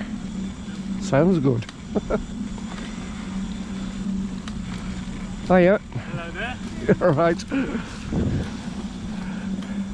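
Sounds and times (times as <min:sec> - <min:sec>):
electric scooter motor humming: 0:00.0 - 0:09.9.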